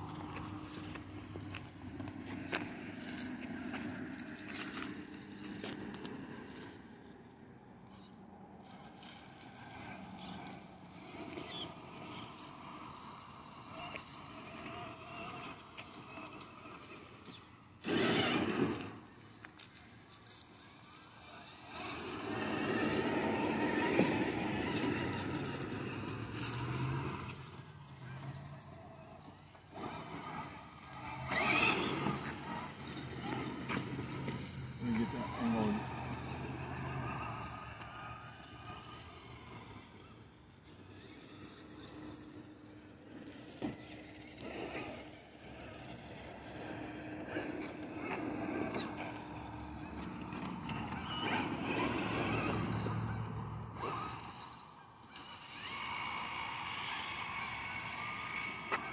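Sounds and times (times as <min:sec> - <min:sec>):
electric motor humming: 0:00.0 - 0:58.9.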